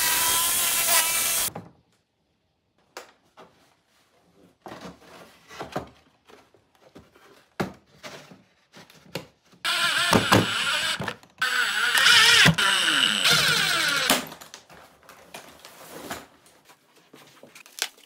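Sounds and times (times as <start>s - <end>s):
cordless driver driving screws: 9.7s - 14.3s.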